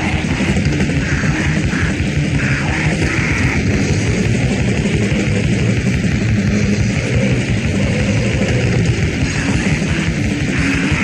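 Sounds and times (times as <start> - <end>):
distorted guitar noise: 0.0 - 11.0
rapid drumming: 0.0 - 11.0.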